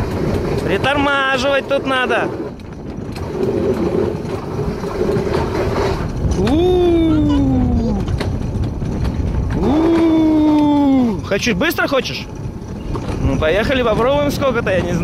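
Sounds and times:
coaster sled rolling rumble: 0.0 - 15.0.

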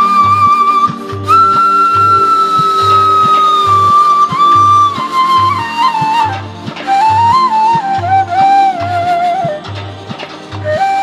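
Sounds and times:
flute long held note: 0.0 - 9.9, 10.6 - 11.0.

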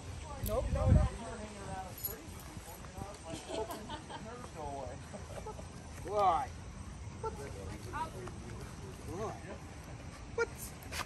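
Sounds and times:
distant people conversing: 0.0 - 11.0.

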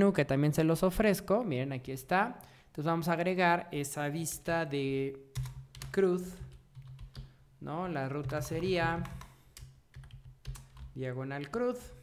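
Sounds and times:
computer keyboard keystrokes: 5.4 - 7.3, 8.2 - 11.6.

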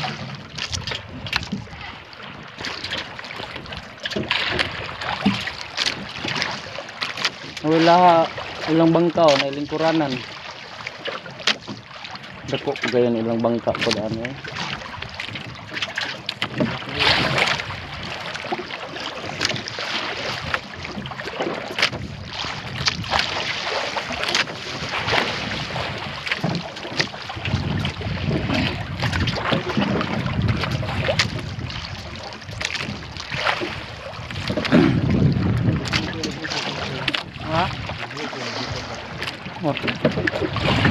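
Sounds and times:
water slapping against boat hull: 0.0 - 40.9
wind buffeting microphone: 21.8 - 40.9.

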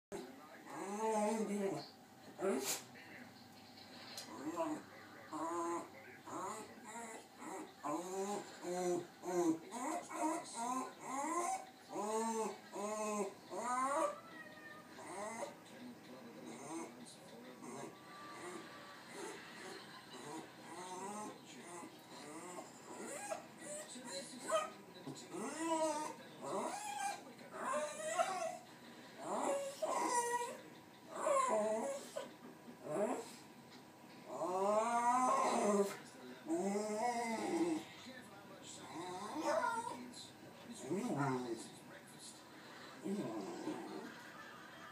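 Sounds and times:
dog whining: 0.7 - 1.8, 4.3 - 15.6, 16.5 - 16.9, 17.6 - 28.6, 29.2 - 33.4, 34.3 - 37.8, 38.8 - 40.0.

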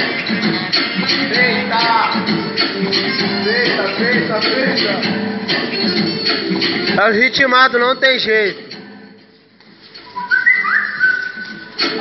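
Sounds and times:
person whistling: 10.1 - 11.7.

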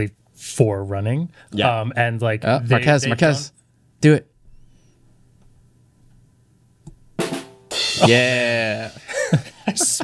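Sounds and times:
drum kit sting: 7.3 - 8.5.

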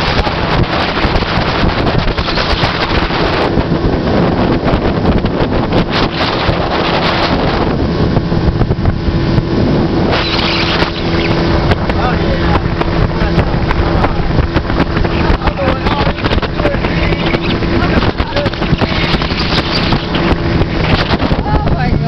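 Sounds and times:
outboard motor droning: 0.0 - 22.0
water rushing past hull: 0.0 - 22.0
wind buffeting microphone: 0.0 - 22.0.

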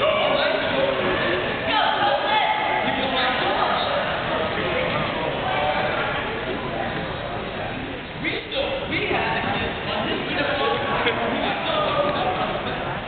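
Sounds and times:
murmur of crowd chatter: 0.0 - 13.0.

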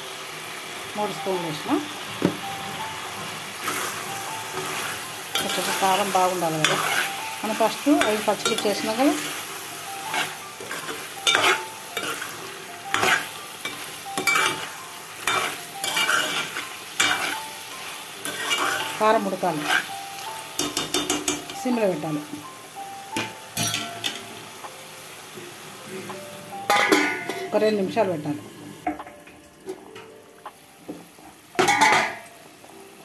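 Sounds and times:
frying sizzle: 0.0 - 33.0.

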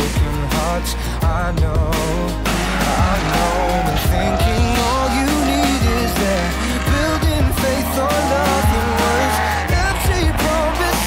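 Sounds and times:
loud backing music: 0.0 - 11.0
car engine revving: 2.0 - 11.0.

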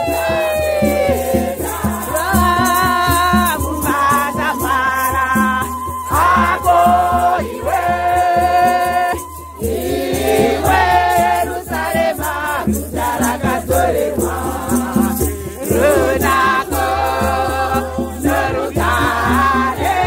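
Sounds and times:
gourd rattles shaking: 0.0 - 20.0
women singing a hymn: 0.0 - 20.0.

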